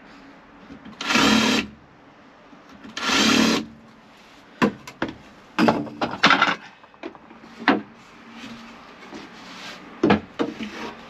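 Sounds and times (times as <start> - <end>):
wooden battens knocking together: 5.0 - 7.2.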